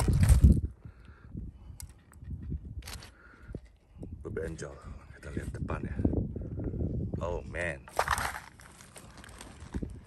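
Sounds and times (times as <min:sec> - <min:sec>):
wind buffeting microphone: 0:00.0 - 0:08.6, 0:09.3 - 0:10.0.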